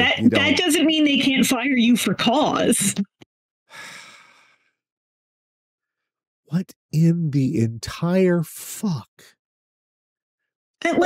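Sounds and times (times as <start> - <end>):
person sighing: 3.7 - 4.5.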